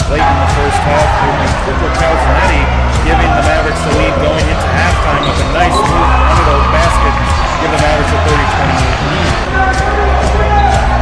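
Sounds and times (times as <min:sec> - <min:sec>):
music: 0:00.0 - 0:11.0
voices: 0:00.0 - 0:11.0.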